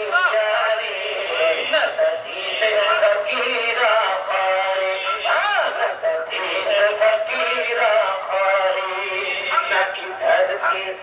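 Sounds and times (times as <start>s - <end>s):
man singing: 0.0s - 11.0s.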